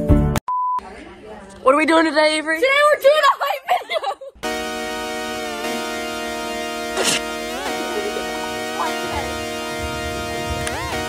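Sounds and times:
background music with steady beat: 4.4s - 11.0s
person speaking: 7.0s - 9.5s.

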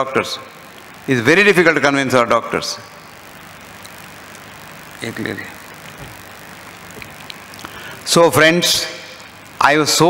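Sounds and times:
sound system hiss: 0.0s - 10.0s.

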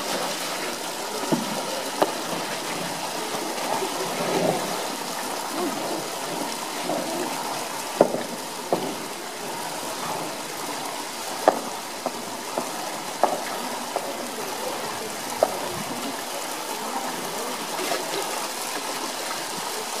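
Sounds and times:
pool water splashing and lapping: 0.0s - 20.0s
sharp knocks: 8.0s - 9.1s, 11.4s - 14.1s.

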